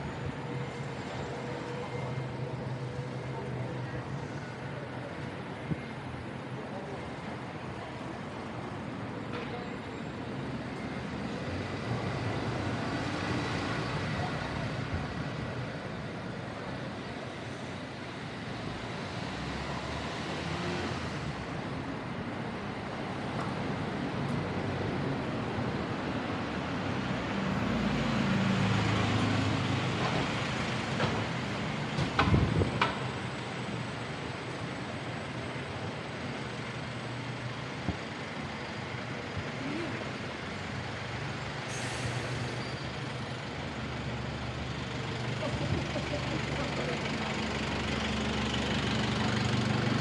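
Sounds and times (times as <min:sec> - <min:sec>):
bus passing: 0:00.0 - 0:50.0
traffic passing on street: 0:00.0 - 0:50.0.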